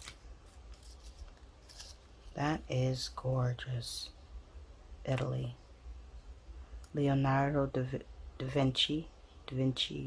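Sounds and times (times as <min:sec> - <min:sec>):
paper pieces rustling: 0:00.0 - 0:02.1
low steady hum: 0:00.0 - 0:10.0.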